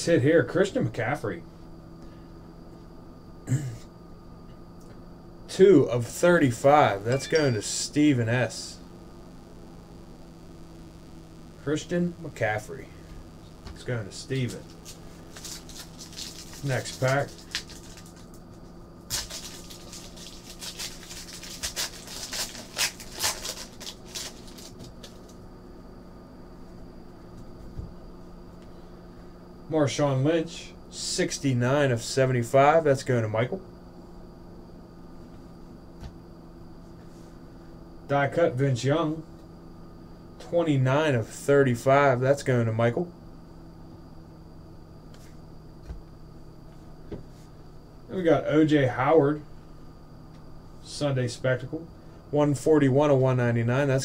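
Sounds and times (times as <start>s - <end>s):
low electrical hum: 0.0s - 54.0s
card pack wrapper crinkling: 14.7s - 18.4s, 19.1s - 25.4s.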